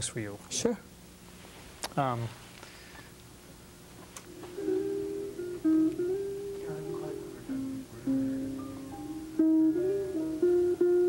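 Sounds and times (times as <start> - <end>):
instrumental music from boombox: 4.3 - 11.0.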